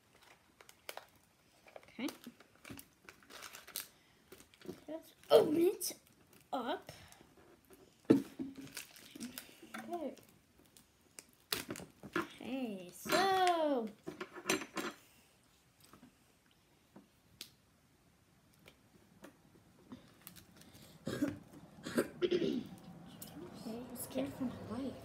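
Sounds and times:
snack package rustling: 0.0 - 6.6, 8.6 - 12.1
child's wordless voice: 4.8 - 7.1, 9.1 - 10.3, 12.2 - 14.1, 23.0 - 25.0.

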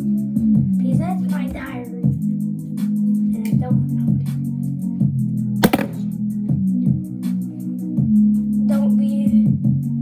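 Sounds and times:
sharp smack: 5.6 - 6.1
pop music with steady beat: 5.6 - 7.4.

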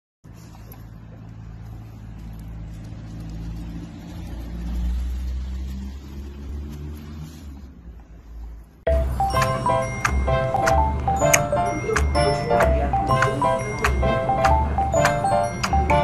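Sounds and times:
vehicle engine rumbling: 0.2 - 16.0.

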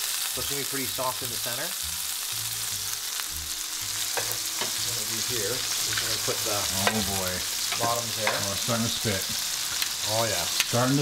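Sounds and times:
steaks sizzling in a skillet: 0.0 - 11.0.

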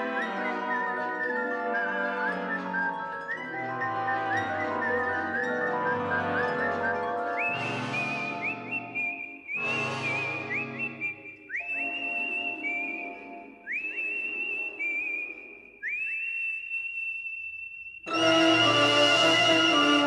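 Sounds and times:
whistled melody: 0.0 - 20.0.

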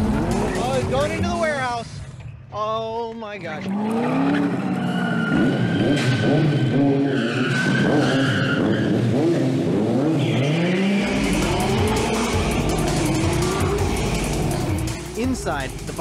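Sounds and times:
engines revving: 0.0 - 1.6, 3.6 - 16.0
background music: 0.0 - 3.0, 10.2 - 16.0
tires squealing: 3.6 - 14.7.

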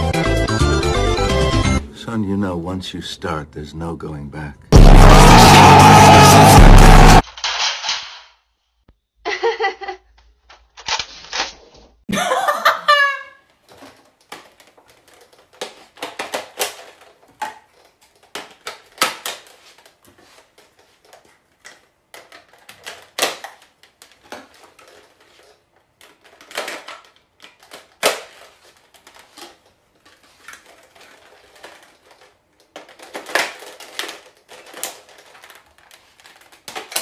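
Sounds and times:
plastic toy parts clicking: 13.6 - 37.0.

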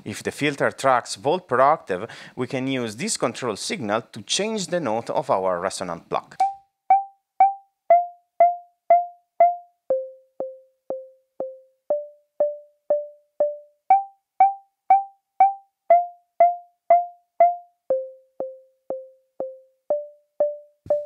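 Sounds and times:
pitched synth pings: 6.4 - 21.0.

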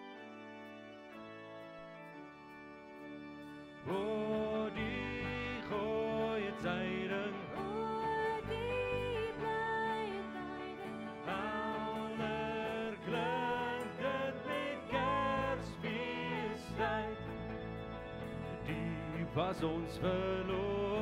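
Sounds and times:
guitar accompaniment: 0.0 - 21.0
person singing carol: 3.8 - 21.0.

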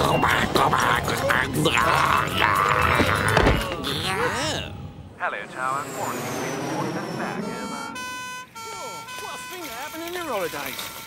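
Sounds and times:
high falling whine: 5.0 - 8.3
cartoon two-tone siren: 7.2 - 11.0.

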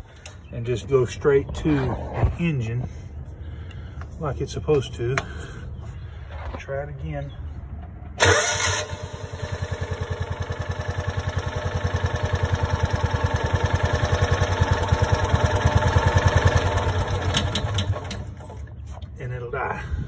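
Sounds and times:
engine starter cranking: 8.2 - 12.7, 13.3 - 18.7
engine running with rapid beat: 8.2 - 18.0.

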